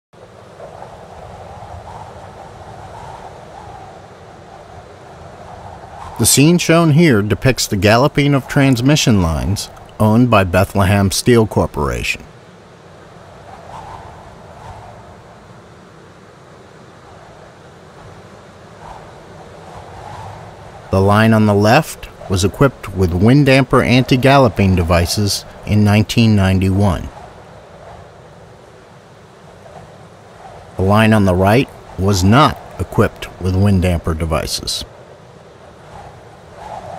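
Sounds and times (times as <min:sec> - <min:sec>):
wind across microphone: 0:00.2 - 0:36.9.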